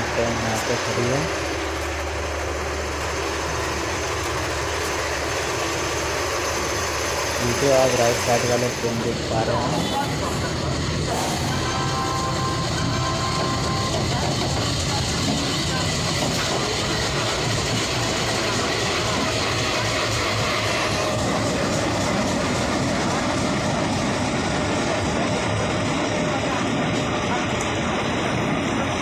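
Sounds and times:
diesel locomotive idling: 0:00.0 - 0:29.0
generator set running: 0:00.0 - 0:29.0.

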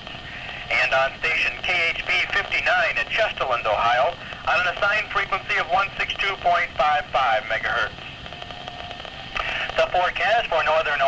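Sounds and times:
radio static hiss: 0:00.0 - 0:11.0
man announcing on radio: 0:00.4 - 0:08.1, 0:09.4 - 0:11.0.

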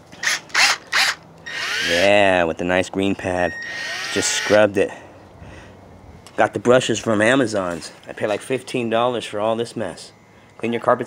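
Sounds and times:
power drill motor whine: 0:00.2 - 0:02.4, 0:03.4 - 0:04.7.

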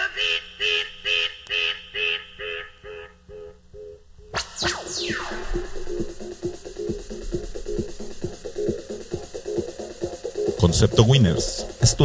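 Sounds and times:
echoing processed electronic sound: 0:00.0 - 0:12.0.

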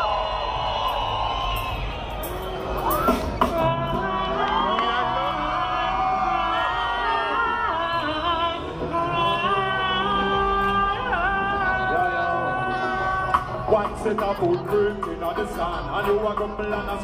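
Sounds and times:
crowd cheering and whooping: 0:00.0 - 0:14.4
reggae music with sustained chords: 0:00.0 - 0:17.0.

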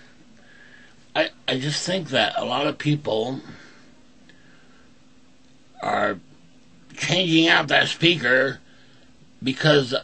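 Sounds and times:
faint steady hum: 0:00.0 - 0:10.0
man speaking: 0:01.2 - 0:03.7, 0:05.8 - 0:06.3, 0:06.9 - 0:08.6, 0:09.4 - 0:10.0.

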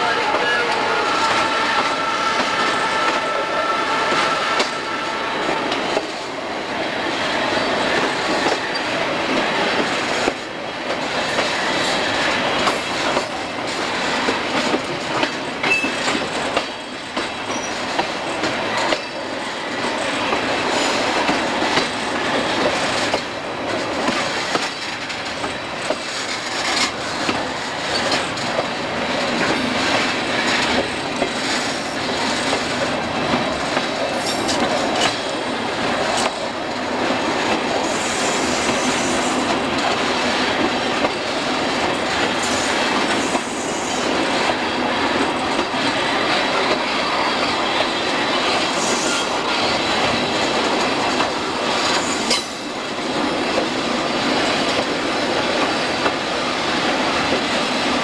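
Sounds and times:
train wheels rattling on rails: 0:00.0 - 0:58.0.

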